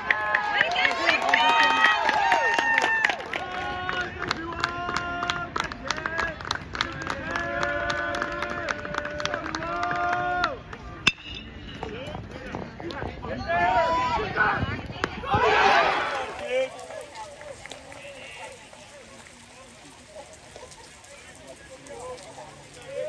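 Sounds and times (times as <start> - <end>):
crowd shouting and cheering: 0.0 - 18.9
crowd chanting: 15.2 - 16.5.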